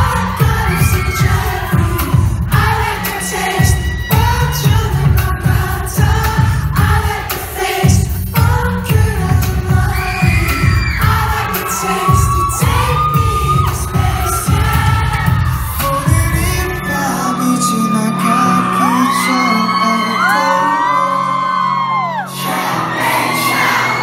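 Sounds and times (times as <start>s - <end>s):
crowd whooping: 0.0s - 6.4s, 9.7s - 24.0s
drum and bass beat: 0.0s - 17.1s
man singing: 0.0s - 22.5s.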